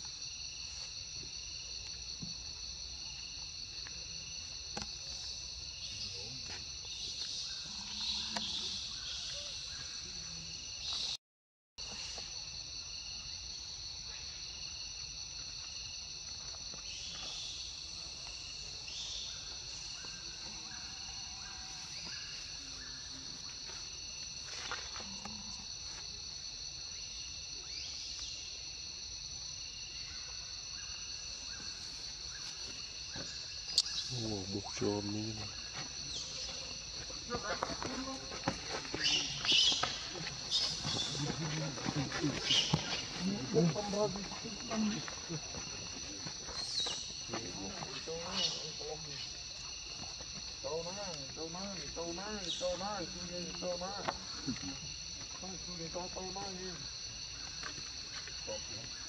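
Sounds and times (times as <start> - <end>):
voices: 33.8 - 49.4, 50.6 - 56.8.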